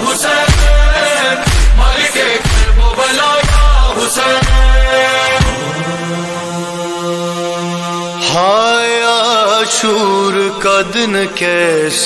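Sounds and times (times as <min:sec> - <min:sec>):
sung lament over loudspeakers: 0:00.0 - 0:12.0.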